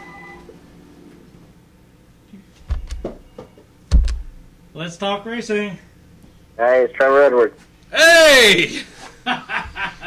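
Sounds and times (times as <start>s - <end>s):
electronic telephone tone: 0.0s - 0.6s.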